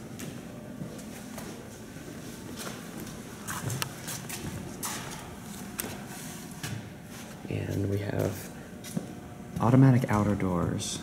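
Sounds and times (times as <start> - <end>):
low steady hum: 0.0 - 11.0
footsteps: 0.2 - 10.4.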